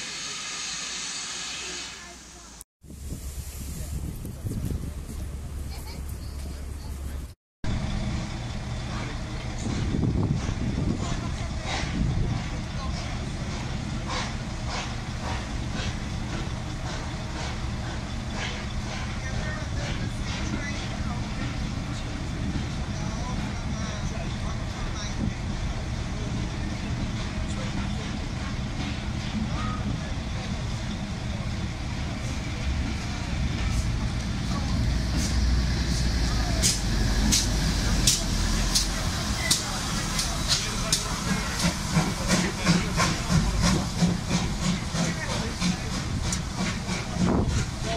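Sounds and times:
steam locomotive passing: 0.0 - 47.9
train coaches rumbling past: 0.0 - 47.9.

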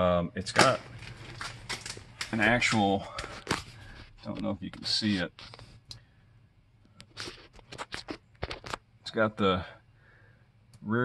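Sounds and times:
light clicks and scratches: 0.6 - 6.0, 7.0 - 8.8.

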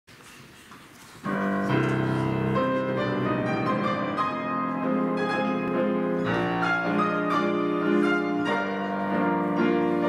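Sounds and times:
grand piano playing chords: 1.2 - 10.0.

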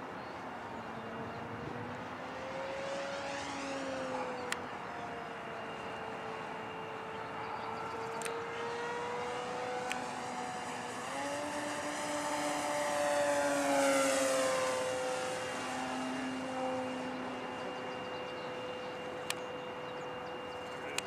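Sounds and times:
electric motor and propeller whine: 0.0 - 21.0
faint clicks: 19.2 - 19.9.

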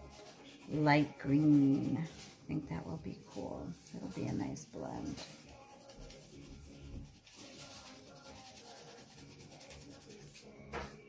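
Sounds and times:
crayon rubbing on paper: 0.0 - 10.6.

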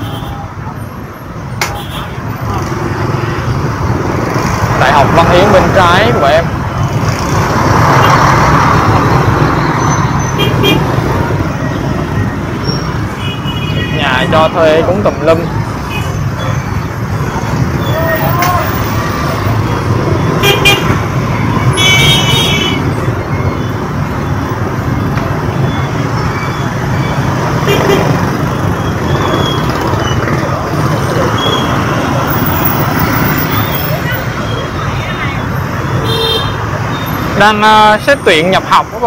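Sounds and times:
city street traffic: 0.0 - 39.0
vehicle horn: 10.4 - 10.9, 21.7 - 22.9, 36.0 - 36.6.

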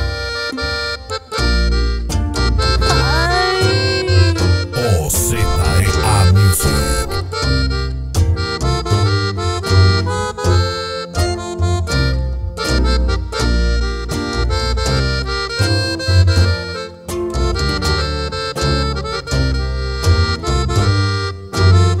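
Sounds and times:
button accordion melody: 0.0 - 22.0
low bass notes: 2.6 - 7.4.

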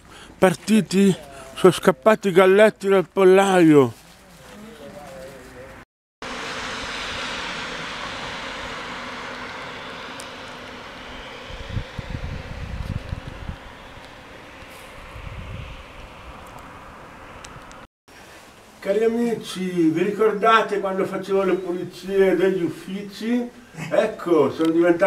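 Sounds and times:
traffic hiss on wet road: 6.2 - 11.9, 12.8 - 18.9
wind rumbling on microphone: 6.8 - 17.9.

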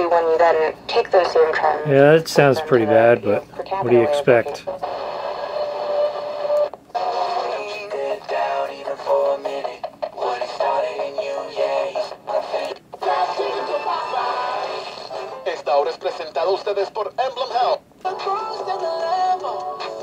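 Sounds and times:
tinny music with singing on radio: 0.0 - 20.0.

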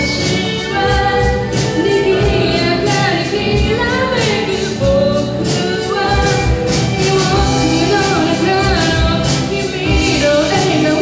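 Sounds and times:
drum kit beat: 0.0 - 11.0
live rock band playing: 0.0 - 11.0
woman singing: 0.0 - 11.0.

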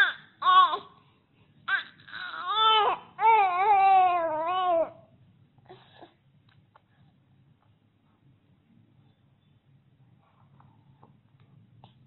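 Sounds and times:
baby crying: 0.0 - 1.0, 1.7 - 5.0.

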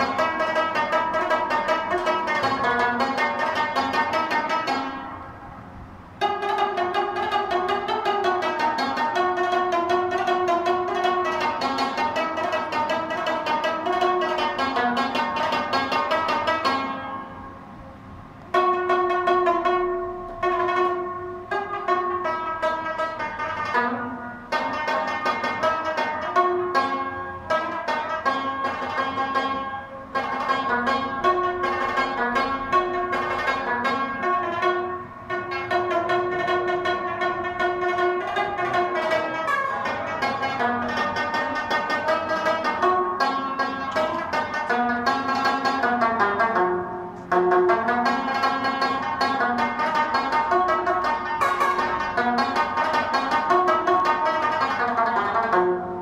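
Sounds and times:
rabab plucked notes: 0.0 - 56.0.

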